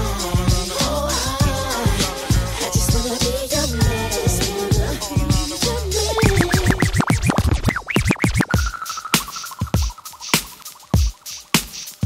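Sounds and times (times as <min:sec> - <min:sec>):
dance music: 0:03.8 - 0:11.8
vinyl record scratching: 0:04.6 - 0:12.0
steady high tone: 0:05.9 - 0:10.6.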